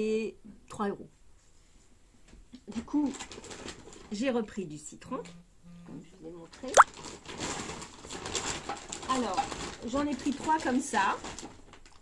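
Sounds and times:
shopping bags rustling and crinkling: 0:02.7 - 0:04.2, 0:06.9 - 0:12.0.

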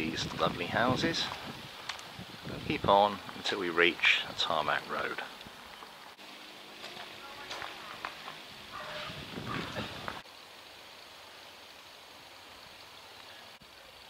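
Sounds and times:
faint steady hiss: 0:00.0 - 0:14.0
distant indistinct voices: 0:06.6 - 0:10.2.

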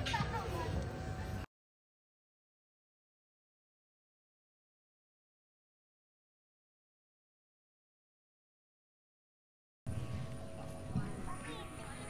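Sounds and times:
faint indistinct voices: 0:00.0 - 0:01.5, 0:09.9 - 0:12.0
low rumble: 0:09.9 - 0:12.0.

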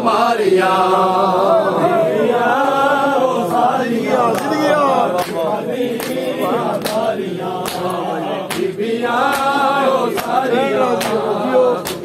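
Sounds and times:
men chanting a mourning lament: 0:00.0 - 0:12.0.

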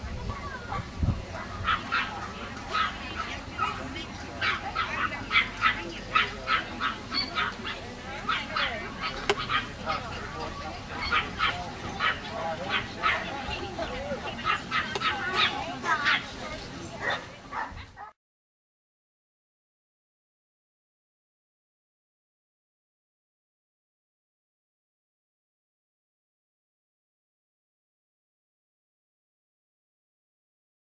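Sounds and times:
dogs barking: 0:00.6 - 0:10.3, 0:10.9 - 0:16.4, 0:17.0 - 0:18.2.

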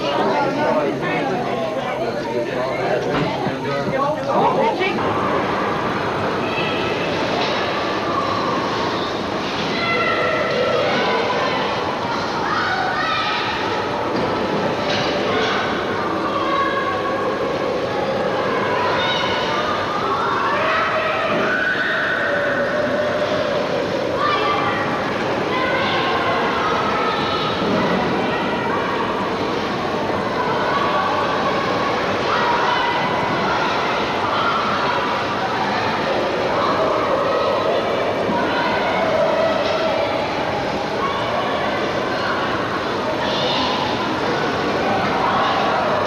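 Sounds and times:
constant noisy background: 0:00.0 - 0:46.0
indoor ice rink ambience: 0:00.0 - 0:46.0
voices echoing: 0:00.0 - 0:46.0.

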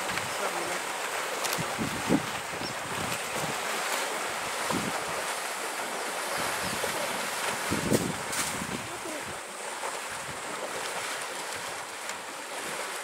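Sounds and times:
water sloshing and splashing: 0:00.0 - 0:13.0.

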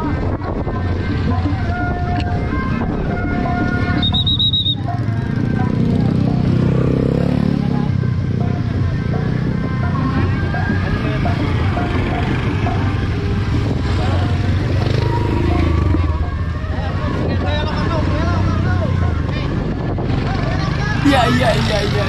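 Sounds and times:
people's voices: 0:20.9 - 0:22.0.

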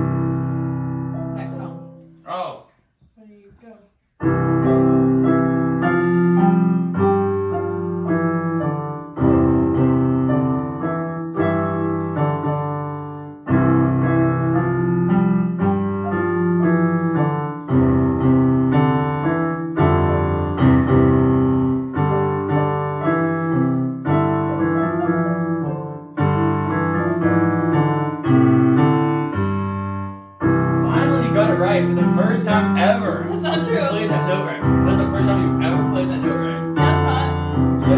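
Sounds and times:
electronic keyboard piano duet: 0:00.0 - 0:02.6, 0:04.1 - 0:37.9.

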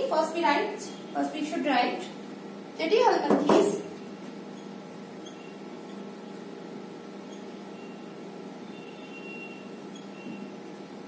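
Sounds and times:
electrical room hum: 0:00.0 - 0:11.0
marker squeaking on whiteboard: 0:04.6 - 0:06.0, 0:07.2 - 0:08.0, 0:08.8 - 0:10.5.

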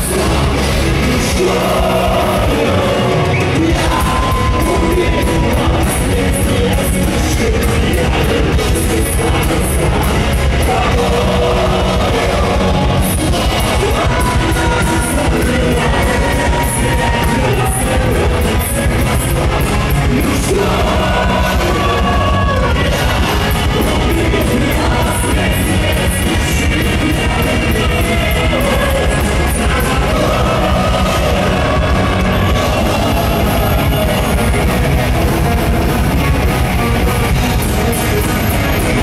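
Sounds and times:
metal band playing live: 0:00.0 - 0:39.0
sung vocals: 0:00.0 - 0:39.0.

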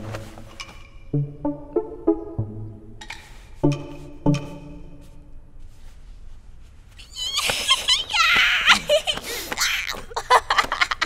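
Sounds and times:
woman's wordless vocalising: 0:07.0 - 0:10.4.

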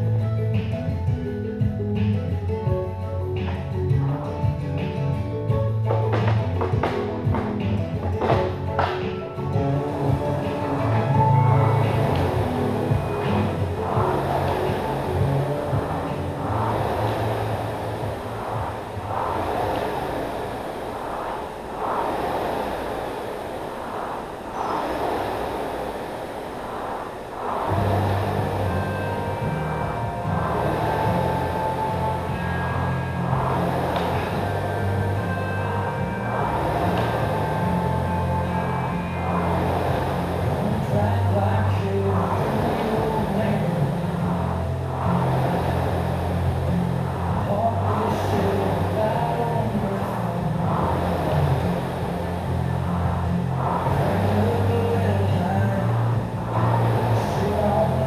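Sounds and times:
background music with bass line: 0:00.0 - 0:19.4
rowing machine flywheel whooshing: 0:05.8 - 0:58.0.

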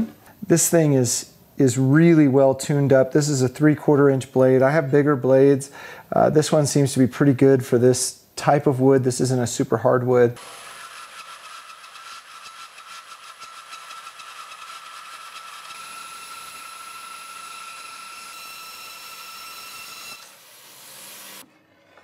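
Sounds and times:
bandsaw cutting wood: 0:10.4 - 0:21.5.

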